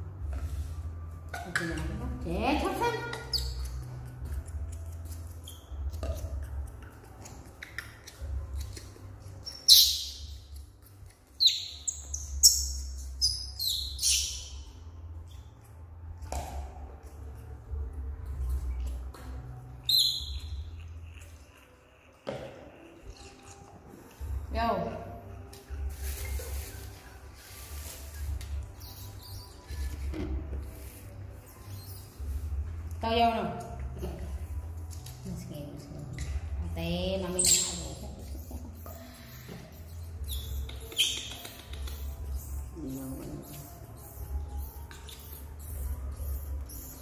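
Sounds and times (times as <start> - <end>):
monkey high-pitched squeak: 2.7 - 4.0, 7.5 - 10.5, 11.4 - 14.7, 19.8 - 23.7, 28.7 - 30.0, 31.4 - 32.4, 37.2 - 47.0.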